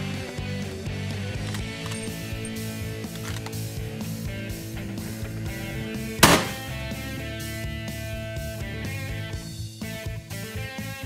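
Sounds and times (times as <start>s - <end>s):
rock music with electric guitar: 0.0s - 11.0s
loud rifle shot: 6.2s - 6.8s.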